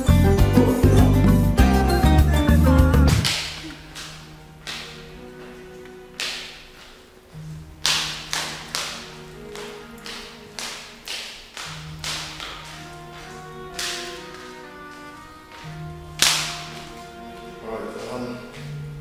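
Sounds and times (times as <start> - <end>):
sustained orchestral notes: 0.0 - 19.0
sharp whip-like percussive hits: 3.1 - 5.0, 16.2 - 16.9.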